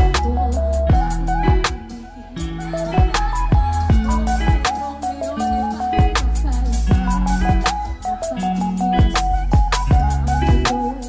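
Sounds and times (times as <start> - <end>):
drum kit beat: 0.0 - 11.0
live band music: 0.0 - 11.0.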